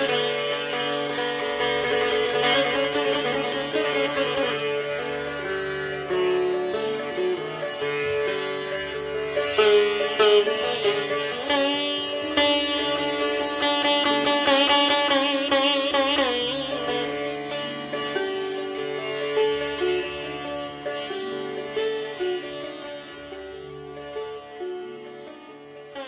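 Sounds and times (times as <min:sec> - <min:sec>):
sitar playing: 0:00.0 - 0:26.0.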